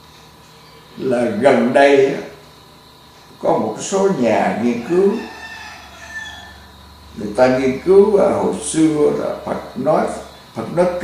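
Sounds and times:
man speaking: 1.0 - 2.4, 3.4 - 5.3, 7.2 - 11.0.

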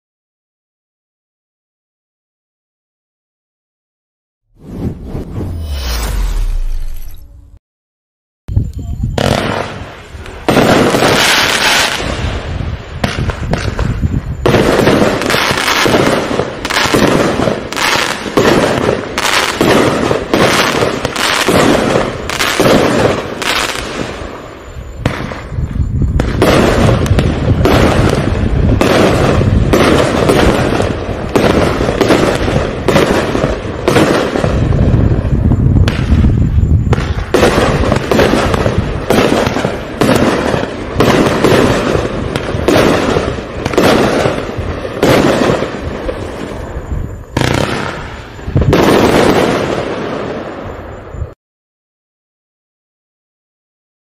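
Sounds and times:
fireworks bangs: 4.6 - 7.6, 9.0 - 51.4
low rumble: 4.6 - 7.6.

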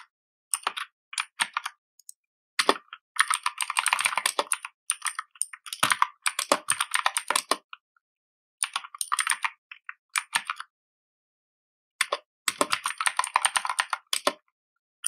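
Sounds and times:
computer keyboard typing: 0.5 - 7.7, 8.6 - 9.6, 10.2 - 10.7, 12.0 - 14.5.

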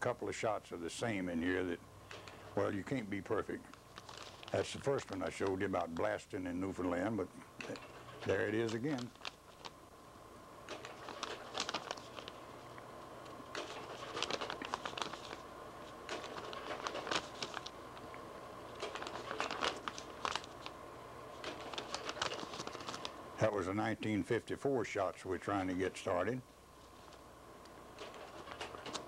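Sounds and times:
faint electrical hum: 0.0 - 29.0
crackling rustling clicks: 2.1 - 6.2, 7.6 - 9.8, 10.6 - 23.3, 26.8 - 29.0.

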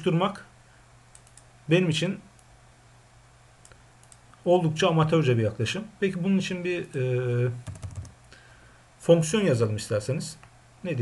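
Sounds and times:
low steady hum: 0.0 - 11.0
computer mouse clicks: 1.1 - 1.5, 3.6 - 4.4.

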